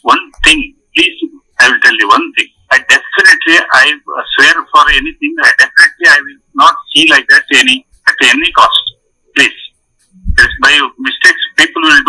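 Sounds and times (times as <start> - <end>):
man speaking over phone line: 0.0 - 9.7, 10.4 - 12.0.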